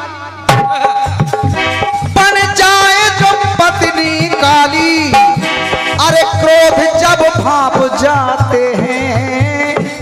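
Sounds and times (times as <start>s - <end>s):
harmonium playing held notes: 0.0s - 10.0s
steady drum beat: 0.4s - 10.0s.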